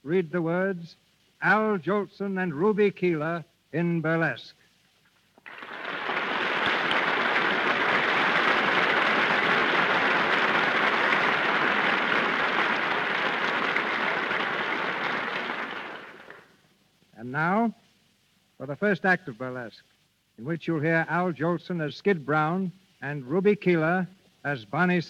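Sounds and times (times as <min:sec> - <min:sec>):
audience applauding: 0:05.4 - 0:16.5.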